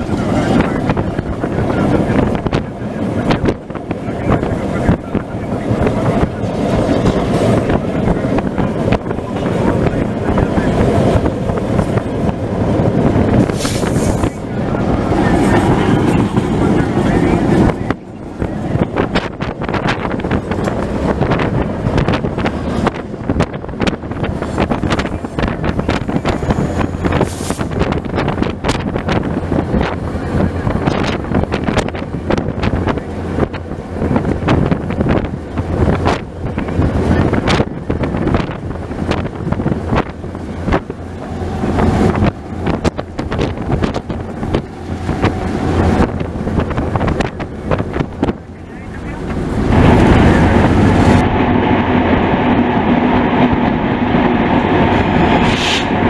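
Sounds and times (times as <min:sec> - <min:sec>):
locomotive low drone: 0:00.0 - 0:56.0
wind buffeting microphone: 0:00.0 - 0:56.0
train wheels clicking on rails: 0:10.7 - 0:16.5.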